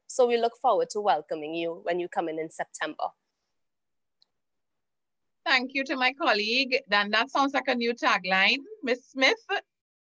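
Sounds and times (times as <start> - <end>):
woman's voice: 0.0 - 3.2, 5.4 - 9.9.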